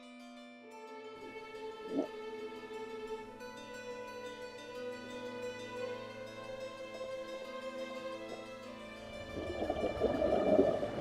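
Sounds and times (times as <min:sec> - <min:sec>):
background music: 0:00.0 - 0:11.0
diver exhaling bubbles underwater: 0:09.3 - 0:11.0.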